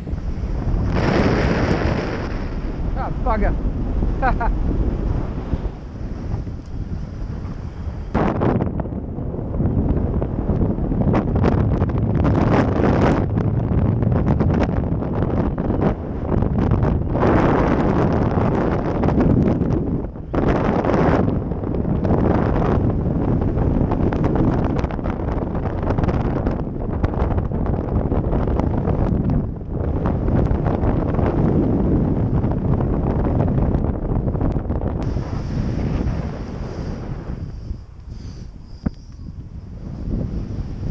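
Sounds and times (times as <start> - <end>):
wind rushing over microphone: 0.0 - 40.9.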